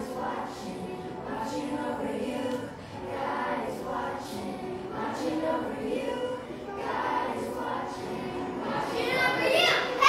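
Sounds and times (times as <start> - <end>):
children singing: 0.0 - 10.0.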